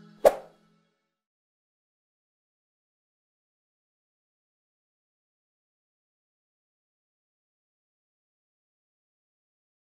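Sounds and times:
short pop sound effect: 0:00.2 - 0:00.5.

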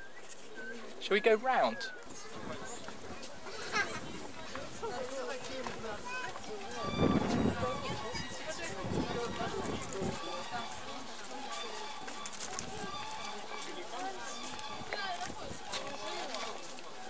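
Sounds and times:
background chatter: 0:00.0 - 0:17.0.

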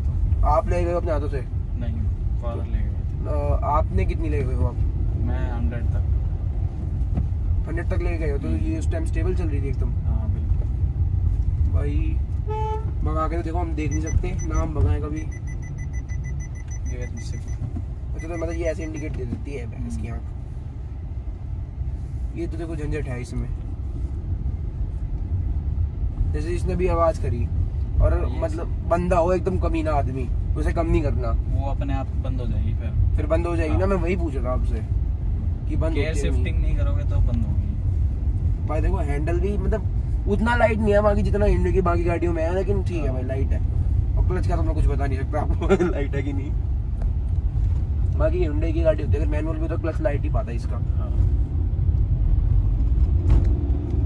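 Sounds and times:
road and engine rumble in car: 0:00.0 - 0:54.0.

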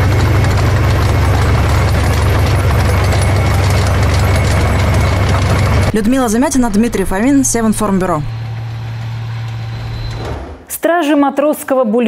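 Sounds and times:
heavy vehicle engine idling: 0:00.0 - 0:10.3.

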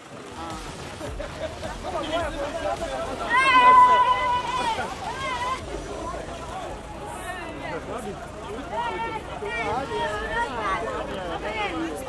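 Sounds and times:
low traffic rumble: 0:00.0 - 0:12.0
people talking: 0:00.0 - 0:12.0.

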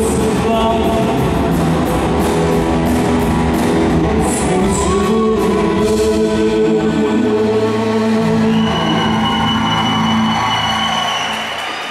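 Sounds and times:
crowd noise: 0:00.0 - 0:11.9.

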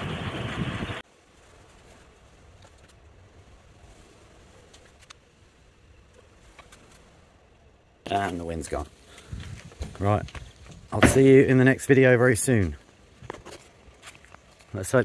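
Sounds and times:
outdoor wind noise: 0:00.0 - 0:15.0.

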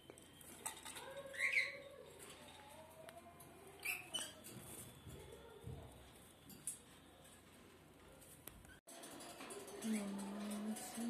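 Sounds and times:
small birds chirping: 0:00.1 - 0:02.1.

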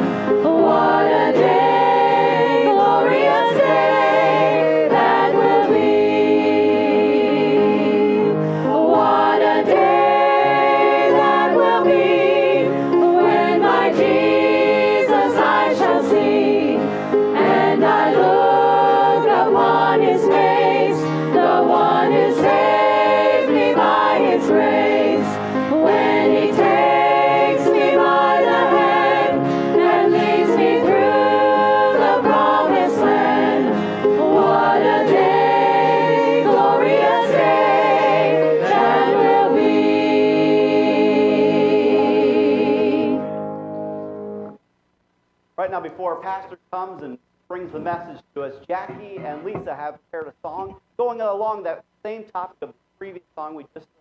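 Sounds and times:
congregation singing a hymn: 0:00.0 - 0:44.5.

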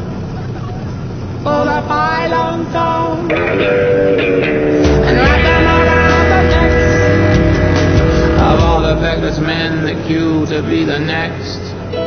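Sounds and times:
light aircraft engine and propeller: 0:00.0 - 0:01.9
pop song singing: 0:01.4 - 0:03.8, 0:04.5 - 0:12.0.

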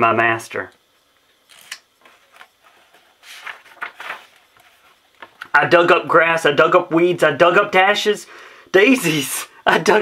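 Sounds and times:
book page turning: 0:01.5 - 0:05.5.

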